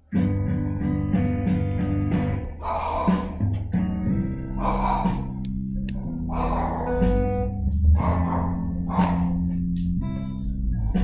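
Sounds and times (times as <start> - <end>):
electric guitar strumming chords: 0.0 - 11.0.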